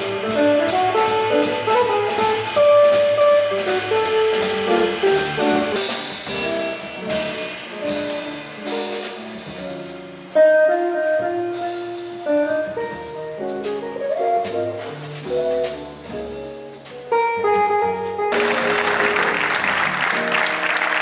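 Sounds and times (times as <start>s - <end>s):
drum kit cymbal strokes: 0.0s - 17.8s
double bass walking line: 0.0s - 20.3s
guitar: 0.0s - 21.0s.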